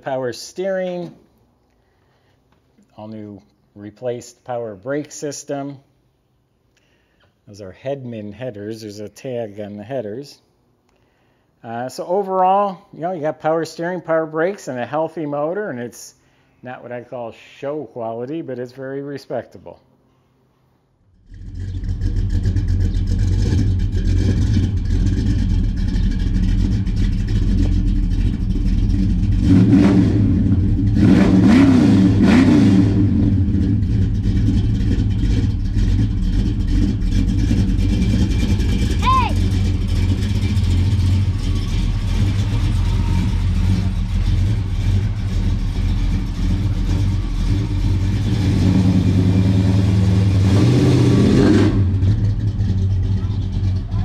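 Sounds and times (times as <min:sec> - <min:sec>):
car engine exhaust rumble: 0:21.1 - 0:54.0.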